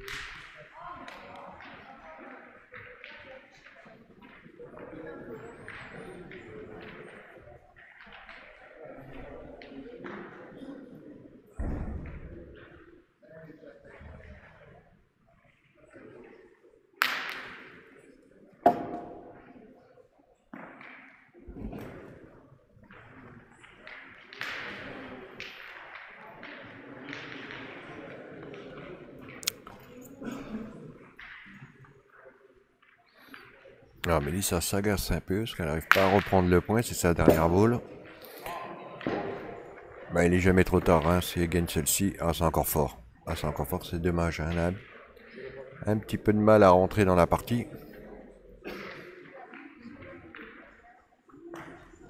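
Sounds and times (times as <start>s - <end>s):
indistinct voices in a hall: 0.0s - 52.0s.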